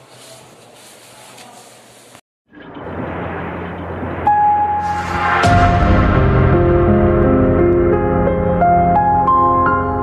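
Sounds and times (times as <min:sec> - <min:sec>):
low rumbling whoosh: 0:02.7 - 0:08.8
sustained high tone: 0:04.1 - 0:08.2.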